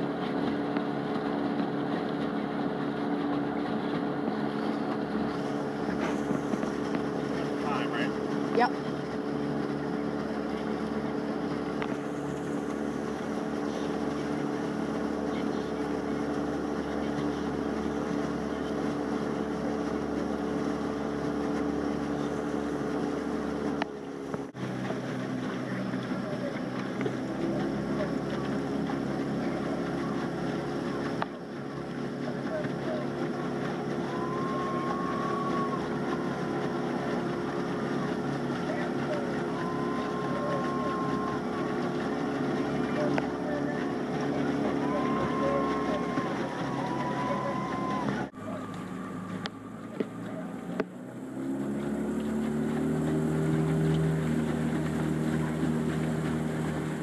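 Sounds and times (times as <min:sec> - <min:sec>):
boat engine running: 0:00.0 - 0:57.0
water noise: 0:00.0 - 0:57.0
wind: 0:00.0 - 0:57.0.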